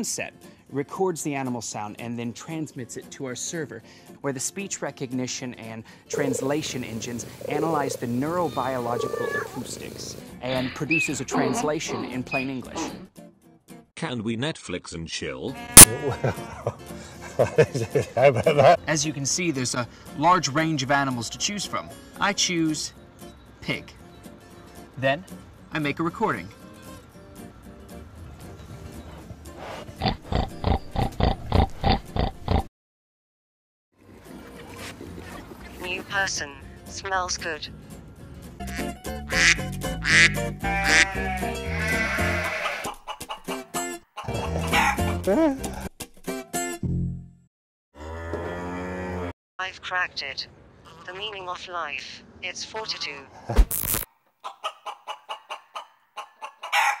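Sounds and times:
chicken clucking: 6.1 - 10.0, 42.6 - 43.6, 44.2 - 45.2, 54.4 - 57.0
pig grunting: 6.1 - 13.0, 29.6 - 32.7, 40.7 - 42.9, 44.2 - 45.9, 48.0 - 49.3.

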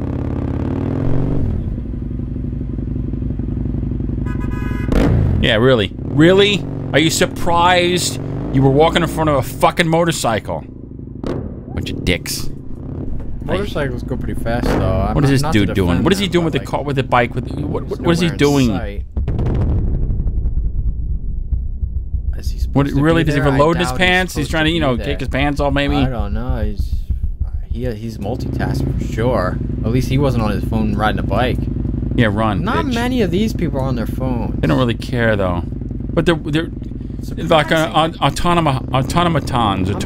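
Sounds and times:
motorcycle engine: 0.0 - 40.0
motorcycle horn blast: 4.2 - 5.0.

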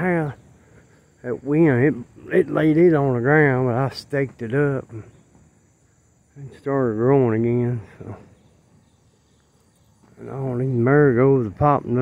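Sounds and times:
man's voice: 10.2 - 12.0.

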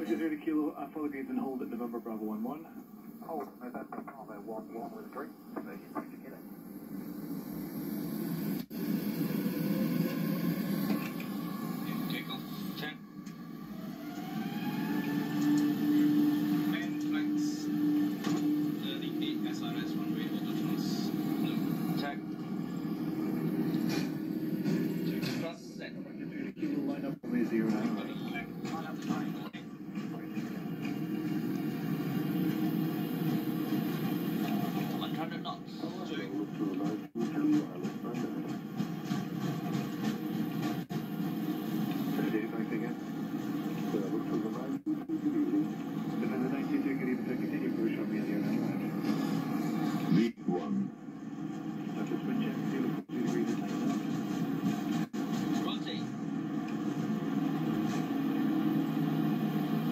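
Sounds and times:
indistinct cockpit voices: 0.0 - 59.9
jet engines spooling up: 0.0 - 59.9.

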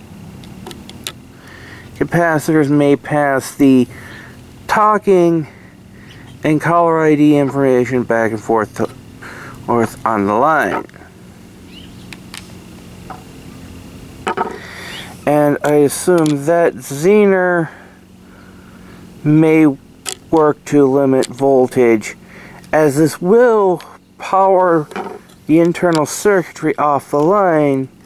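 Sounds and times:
low steady hum: 0.0 - 28.0.

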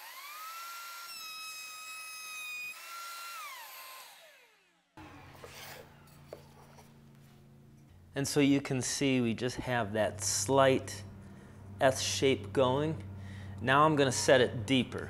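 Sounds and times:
router motor whine: 0.0 - 7.0
faint low hum: 5.1 - 15.0.

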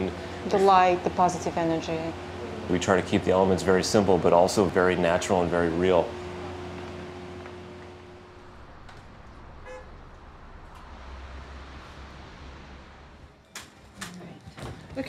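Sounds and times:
low traffic rumble: 0.0 - 15.0
distant car horn toot: 9.5 - 10.1.

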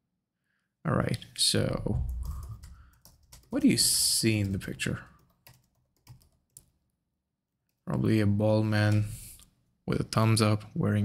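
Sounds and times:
person speaking: 0.9 - 5.3, 7.8 - 11.0
typing on computer keyboard: 2.1 - 6.8.

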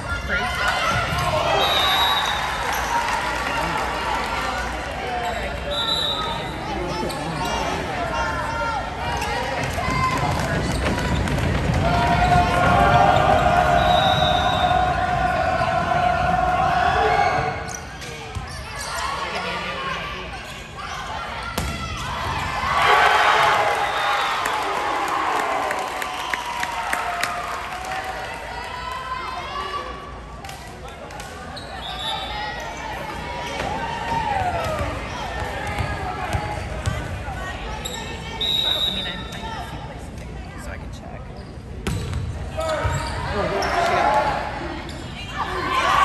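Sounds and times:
spectators shouting: 11.8 - 17.6
volleyball hits echoing: 21.5 - 22.4.

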